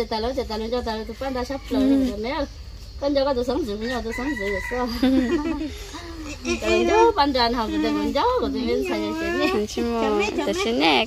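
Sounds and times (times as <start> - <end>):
women talking: 0.0 - 11.0
rooster crowing: 0.8 - 2.2, 3.8 - 6.0.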